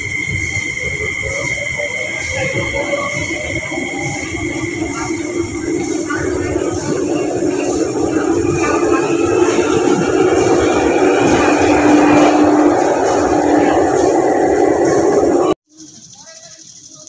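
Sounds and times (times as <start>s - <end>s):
train rumbling past with electric hum: 0.0s - 15.6s.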